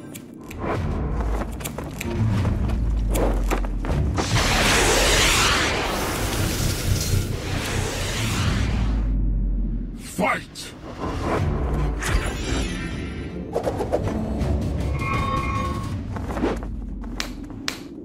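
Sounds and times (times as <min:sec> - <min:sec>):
cinematic film score: 0:00.0 - 0:18.0
rush of noise: 0:04.2 - 0:09.6.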